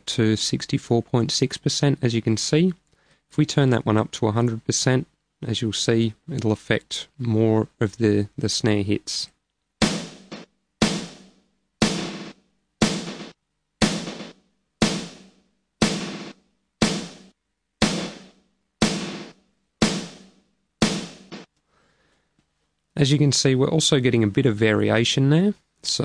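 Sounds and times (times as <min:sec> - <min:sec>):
snare drum with glitchy repeats: 0:09.8 - 0:21.5.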